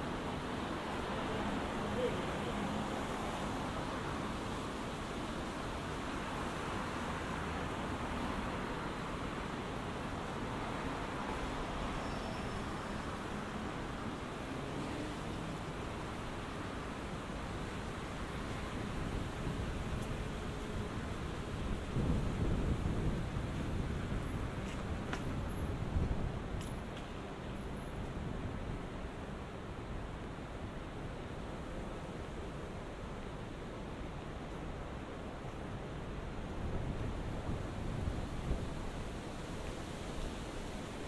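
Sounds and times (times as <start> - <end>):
traffic hum: 0.0 - 41.0.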